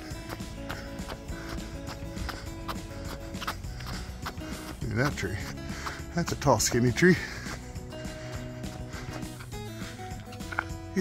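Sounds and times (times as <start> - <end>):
background music: 0.0 - 11.0
running footsteps on pavement: 0.0 - 11.0.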